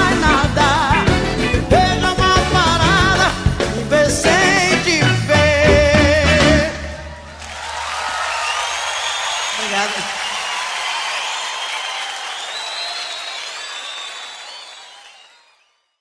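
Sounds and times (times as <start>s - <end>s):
audience applauding and cheering: 6.7s - 15.8s
crowd whistles: 7.0s - 16.0s.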